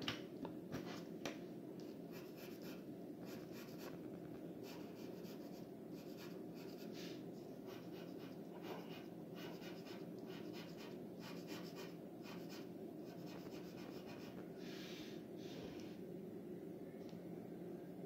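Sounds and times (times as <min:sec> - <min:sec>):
steady low hum: 0:00.0 - 0:18.0
pencil scratching on paper: 0:02.1 - 0:04.0, 0:04.6 - 0:07.0, 0:07.6 - 0:14.4.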